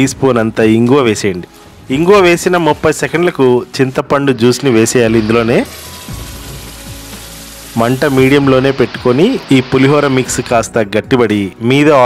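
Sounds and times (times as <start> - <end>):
person speaking: 0.0 - 5.8, 7.7 - 12.0
juice sizzling in hot oil: 0.6 - 10.7.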